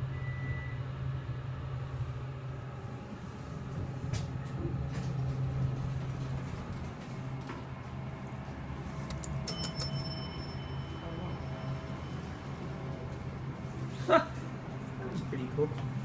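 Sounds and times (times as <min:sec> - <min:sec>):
low hum: 0:00.0 - 0:16.0
elevator chime ding: 0:09.4 - 0:13.5.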